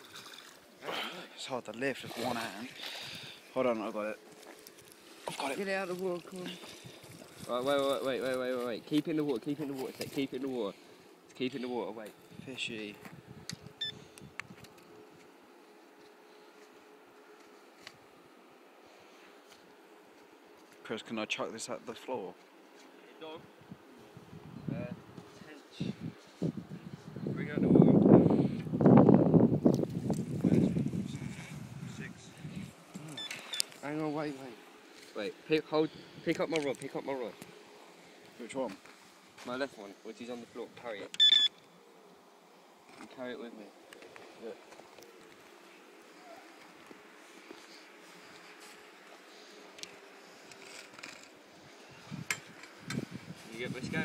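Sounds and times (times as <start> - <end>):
faint steady hum: 0.0 - 54.0
short electronic beep: 41.2 - 41.5.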